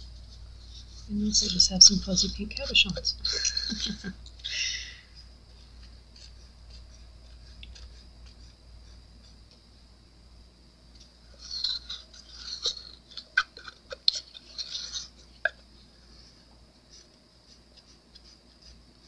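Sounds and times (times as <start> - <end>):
stir stick scraping resin in cup: 5.6 - 8.6, 11.4 - 15.6.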